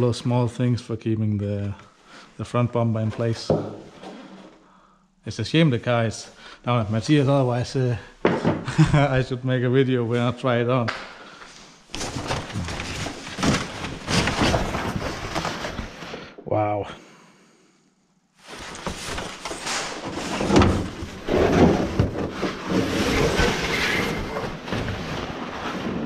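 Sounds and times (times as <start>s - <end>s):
cardboard and packing paper rustling: 11.8s - 16.2s, 18.4s - 26.0s.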